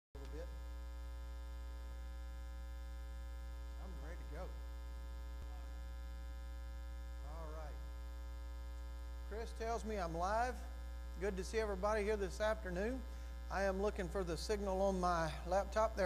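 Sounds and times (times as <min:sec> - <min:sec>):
electrical mains hum: 0:00.2 - 0:16.0.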